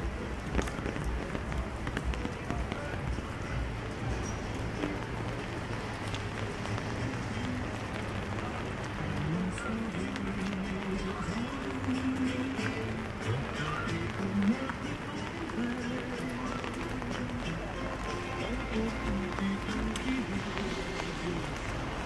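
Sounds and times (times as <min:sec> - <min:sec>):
footsteps on wet paving: 0:00.0 - 0:22.0
rain hissing: 0:00.0 - 0:22.0.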